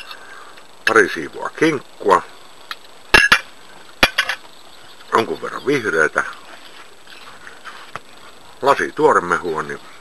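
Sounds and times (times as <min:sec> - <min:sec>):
tableware clicking and knocking: 0:03.2 - 0:04.4.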